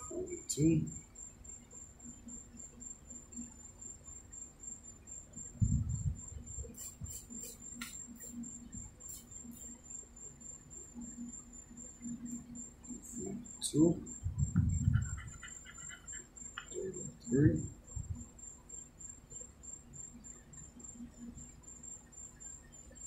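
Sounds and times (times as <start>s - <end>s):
steady high-pitched whine: 0.0s - 23.0s.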